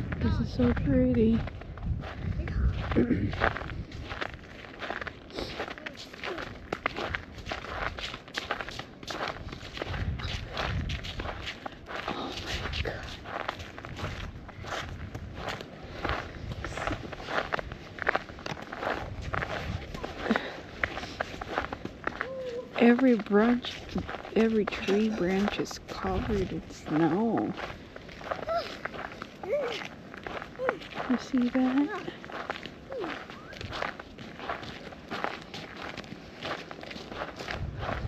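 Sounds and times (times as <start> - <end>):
footsteps on slushy snow: 0.0 - 38.0.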